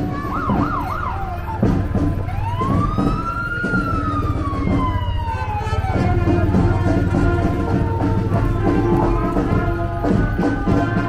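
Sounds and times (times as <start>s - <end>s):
emergency vehicle siren: 0.0s - 11.0s.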